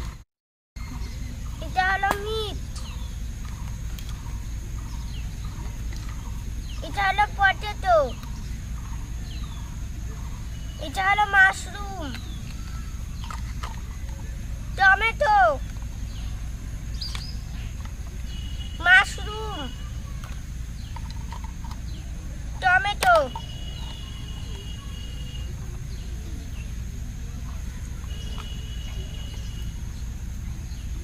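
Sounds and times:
bird chirps: 0.8 - 31.0
steady low rumble: 0.8 - 31.0
thin steady high tone: 0.8 - 31.0
girl speaking: 1.6 - 2.6, 6.8 - 8.2, 10.8 - 12.2, 14.8 - 15.7, 18.8 - 20.2, 22.6 - 23.4.

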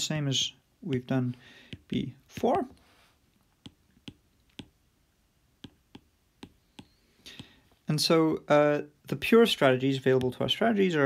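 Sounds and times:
stylus tapping on screen: 0.3 - 2.8, 3.4 - 4.9, 5.5 - 7.6, 10.1 - 10.5.

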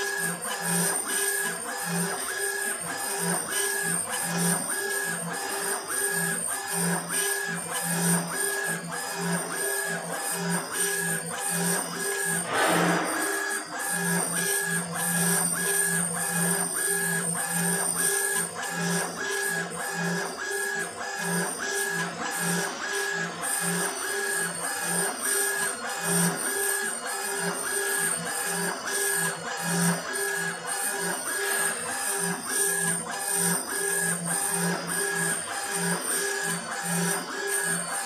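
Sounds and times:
engraver motors whining rhythmically: 0.0 - 38.0.

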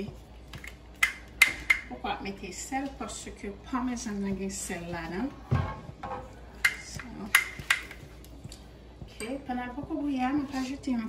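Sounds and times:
woman speaking: 0.0 - 0.2, 1.9 - 5.5, 6.7 - 7.6, 9.0 - 11.0.

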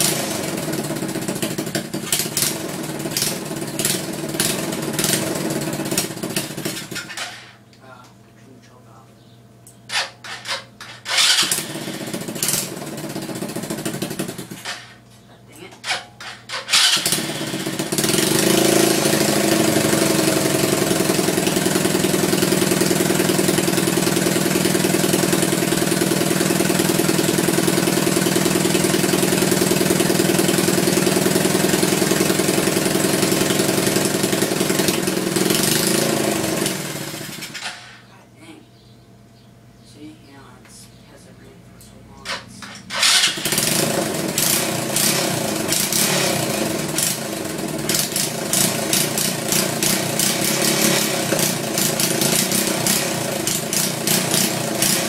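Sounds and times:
loose exhaust engine running: 0.0 - 7.5, 9.8 - 15.0, 15.7 - 38.1, 40.9 - 55.0
engine cranking and starting: 0.0 - 7.6, 9.9 - 15.0, 15.8 - 38.1, 42.2 - 55.0.

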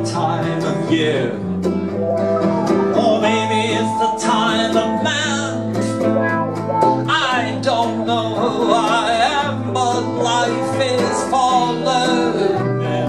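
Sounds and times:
man singing: 0.0 - 1.6, 2.9 - 6.2, 7.0 - 13.0
electric bass line: 0.0 - 11.1
electric guitar: 0.0 - 13.0
strummed acoustic guitar: 0.0 - 13.0.

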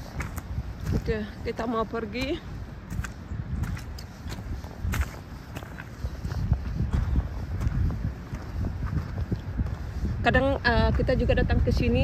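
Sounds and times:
footsteps on gravel: 0.0 - 12.0
low rumble on microphone: 2.4 - 12.0.

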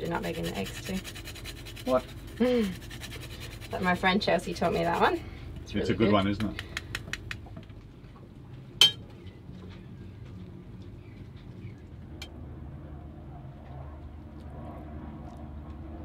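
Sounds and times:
low steady hum: 0.0 - 16.0
utensil clinking on metal cookware: 8.8 - 9.0.

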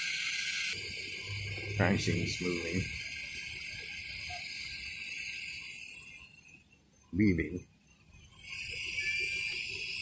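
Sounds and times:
high-pitched chirring: 0.0 - 10.0.

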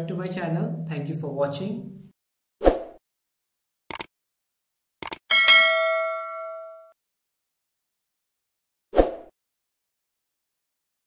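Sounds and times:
clicks: 3.9 - 4.1, 5.0 - 5.2
notification bell ding: 5.3 - 7.0.

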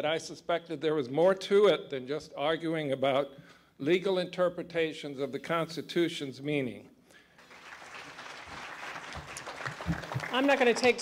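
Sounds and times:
audience applauding: 7.4 - 11.0.

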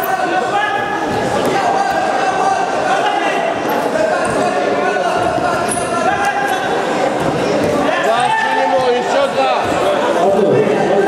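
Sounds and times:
people calling out in hall: 0.0 - 11.0.

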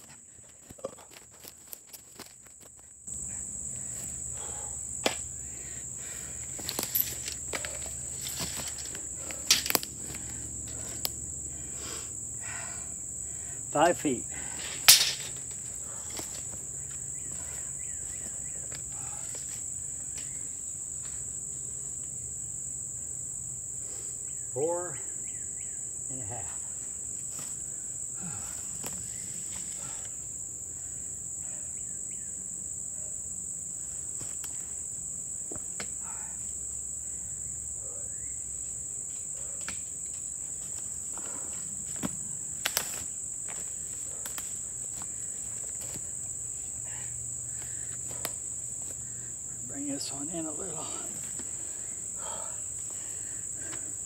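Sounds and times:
insects droning: 0.0 - 54.0
footsteps: 6.3 - 11.1.

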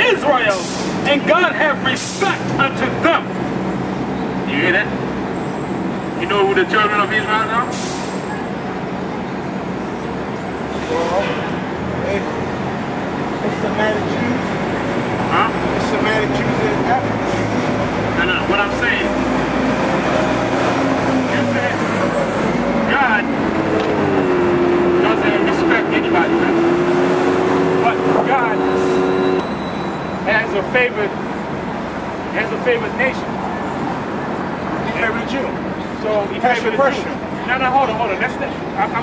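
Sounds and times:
bus engine rumble: 0.0 - 39.0
city street traffic: 0.0 - 39.0.

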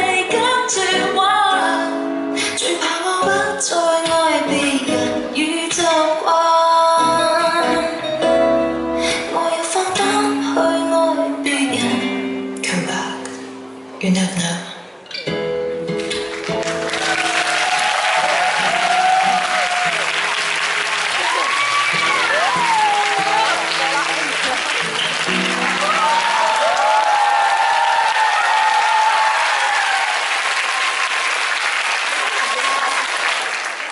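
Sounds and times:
performance music: 14.8 - 33.9
audience applauding and cheering: 16.0 - 33.9
shouts from audience: 17.0 - 20.2, 21.1 - 24.1, 25.6 - 31.3, 32.1 - 33.2.

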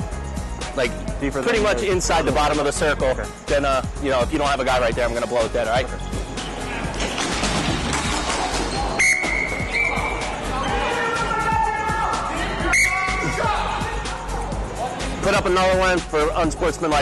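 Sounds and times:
referee's whistle blasts: 9.0 - 10.2, 12.6 - 13.4.

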